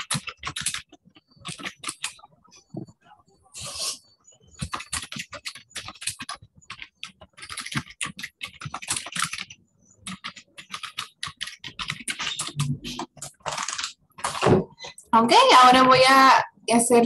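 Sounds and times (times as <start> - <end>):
computer keyboard typing: 0.0 - 2.9, 4.4 - 15.0.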